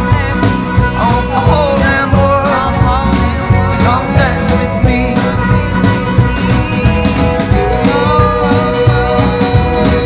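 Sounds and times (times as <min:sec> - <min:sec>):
drums keeping a beat: 0:00.0 - 0:10.0
keyboard: 0:00.0 - 0:10.0
person singing: 0:00.0 - 0:10.0
strummed acoustic guitars: 0:00.0 - 0:10.0.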